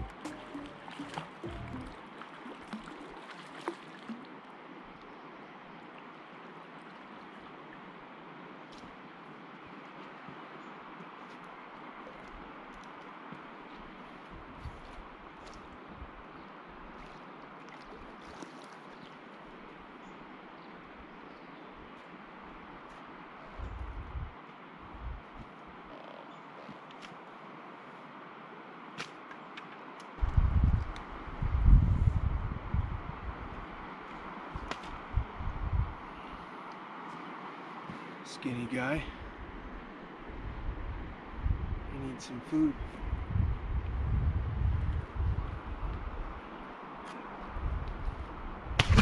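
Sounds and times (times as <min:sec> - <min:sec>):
low thumps: 0:00.0 - 0:02.0
river water rushing: 0:00.0 - 0:23.5, 0:33.4 - 0:35.2, 0:36.0 - 0:40.4.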